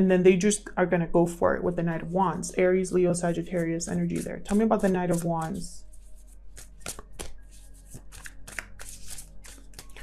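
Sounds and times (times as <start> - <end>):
faint background music: 0.0 - 10.0
cards being shuffled: 3.5 - 10.0.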